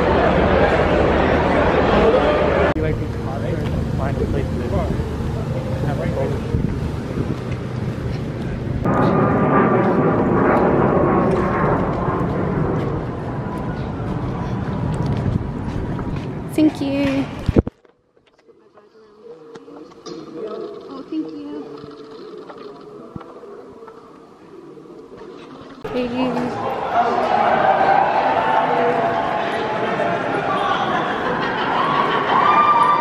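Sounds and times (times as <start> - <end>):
faint hum: 0.0 - 16.2
crowd chatter: 0.0 - 17.6, 18.4 - 33.0
passing traffic hum: 0.0 - 17.6.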